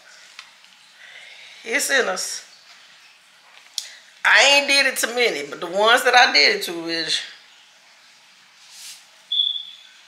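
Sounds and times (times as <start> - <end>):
soft hiss: 7.2 - 10.0
high-pitched beep: 9.3 - 9.8.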